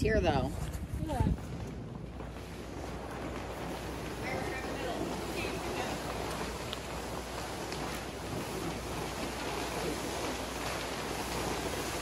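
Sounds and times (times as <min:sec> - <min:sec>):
vinyl tarp dragged over wood floor: 0:02.4 - 0:12.0.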